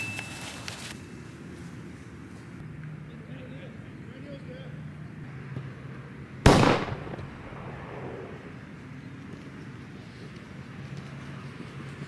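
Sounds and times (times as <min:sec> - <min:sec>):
loud sharp bang: 0:06.5 - 0:08.5.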